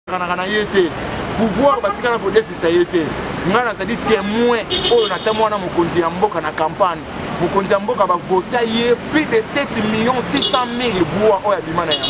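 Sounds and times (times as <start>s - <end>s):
person speaking: 0.1s - 12.0s
street noise: 0.1s - 12.0s.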